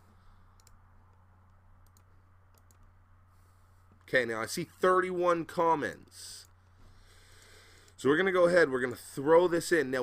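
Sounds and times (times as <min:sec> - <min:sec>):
low steady hum: 0:00.0 - 0:10.0
computer mouse clicks: 0:00.6 - 0:02.9.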